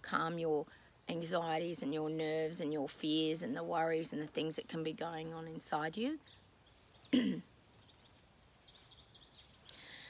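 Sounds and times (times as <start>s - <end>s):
faint bird chirps: 6.2s - 10.0s
woman clearing her throat: 7.1s - 7.5s.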